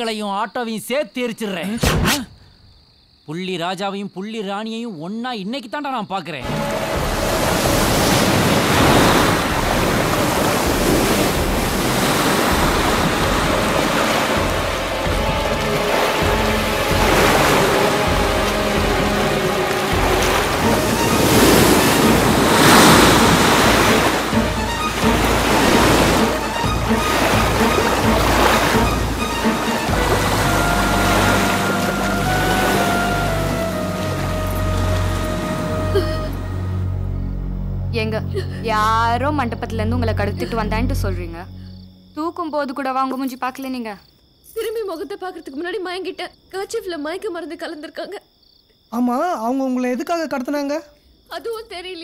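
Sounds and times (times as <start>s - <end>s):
ocean surf crashing: 6.4s - 36.8s
film music: 6.4s - 42.4s.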